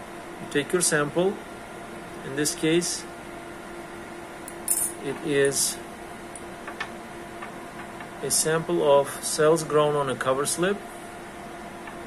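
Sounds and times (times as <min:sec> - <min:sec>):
low hum of lab equipment: 0:00.0 - 0:12.0.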